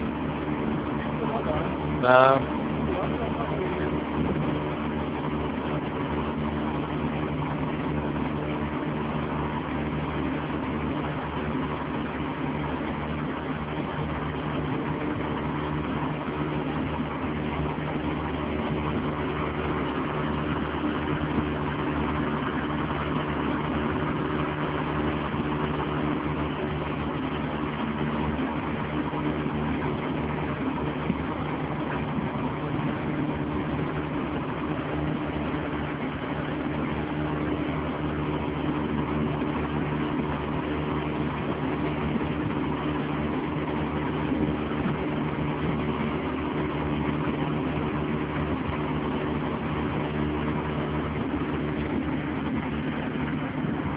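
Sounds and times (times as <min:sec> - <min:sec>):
motorboat engine running: 0:00.0 - 0:53.9
water rushing: 0:00.0 - 0:53.9.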